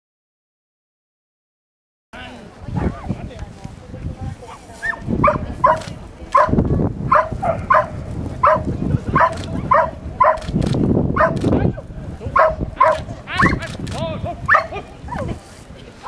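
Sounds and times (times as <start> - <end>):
people chattering: 2.2 - 16.0
dog barking: 4.8 - 10.5, 11.2 - 11.5, 12.3 - 13.6, 14.5 - 14.8.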